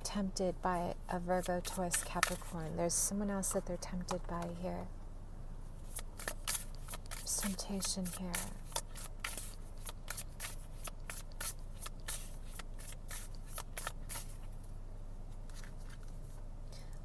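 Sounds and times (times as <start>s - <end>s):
low steady hum: 0.0s - 17.0s
cards being shuffled: 1.4s - 2.6s, 5.9s - 14.5s.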